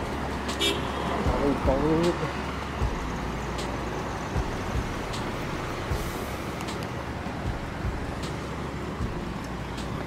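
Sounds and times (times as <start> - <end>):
street traffic: 0.0 - 10.0
footsteps on pavement: 0.1 - 10.0.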